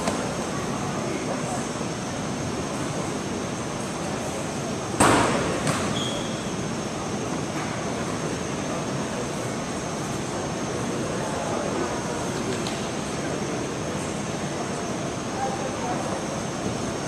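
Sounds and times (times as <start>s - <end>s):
faint indistinct voices: 0.0s - 5.7s, 6.5s - 17.0s
hiss-like crowd din: 0.0s - 17.0s
thin high steady whine: 0.0s - 17.0s.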